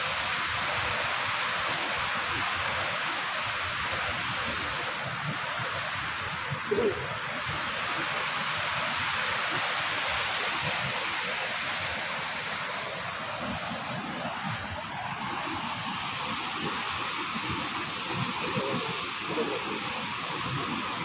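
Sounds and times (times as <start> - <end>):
river rushing over rocks: 0.0 - 21.0
wind buffeting microphone: 0.0 - 21.0.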